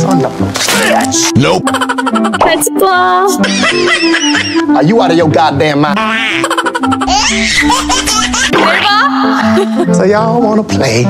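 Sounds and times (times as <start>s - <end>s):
background music: 0.0s - 11.0s
person giggling: 6.4s - 10.0s.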